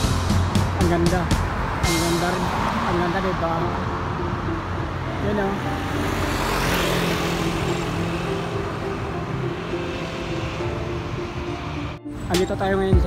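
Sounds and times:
car passing: 0.0 - 12.8
steady traffic rumble: 0.0 - 13.0.

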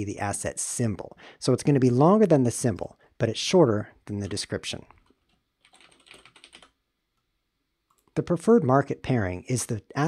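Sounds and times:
typing on computer keyboard: 5.0 - 6.8.

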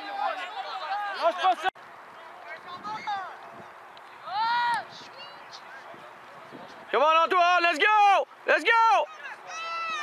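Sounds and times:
people shouting: 0.0 - 1.7, 7.3 - 10.0
outdoor background noise: 0.0 - 10.0.

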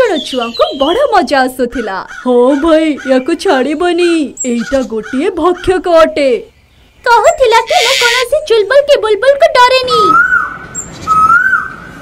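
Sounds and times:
cartoon whistled bird calls: 9.9 - 11.8.

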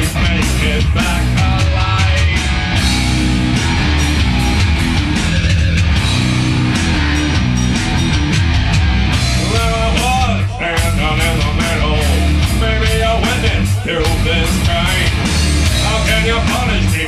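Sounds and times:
electric guitar: 0.0 - 17.0
electronic drum kit: 0.0 - 17.0.

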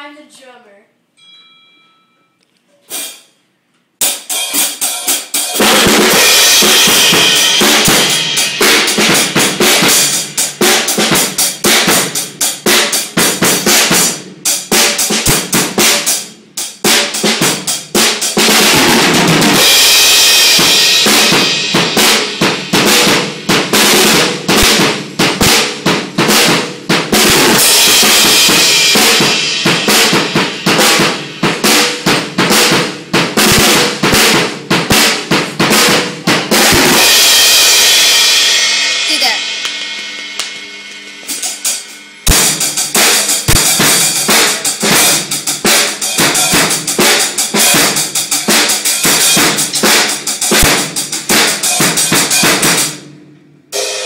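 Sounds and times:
ringing cymbals: 1.2 - 2.4
drums and bass drum: 2.9 - 3.3, 4.0 - 53.0.

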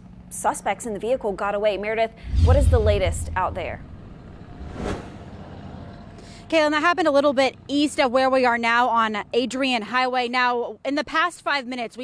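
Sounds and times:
transition whoosh: 2.2 - 5.4.

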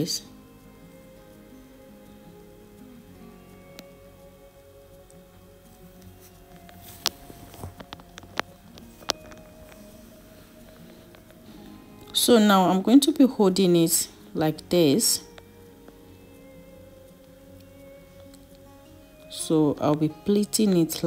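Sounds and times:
satin fabric rustling: 0.0 - 20.5
soft background music: 0.0 - 21.0.

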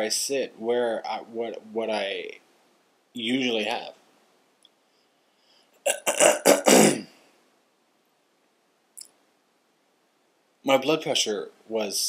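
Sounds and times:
man's rough throaty grunts: 5.9 - 7.0.

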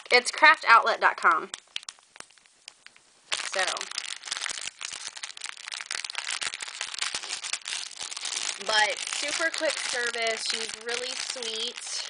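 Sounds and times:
plastic bag crinkling: 1.2 - 12.0.

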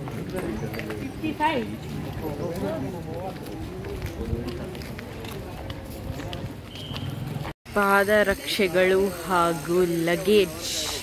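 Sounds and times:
footsteps: 0.0 - 7.6
people talking: 7.8 - 11.0.

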